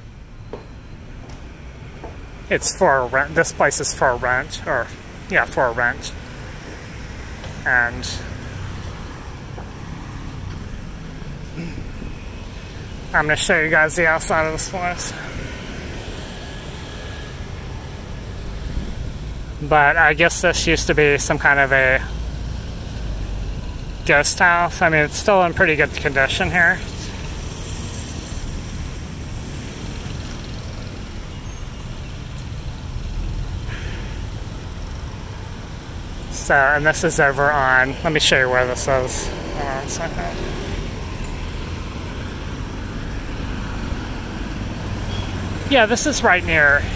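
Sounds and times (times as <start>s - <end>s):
street traffic passing: 0.0s - 46.9s.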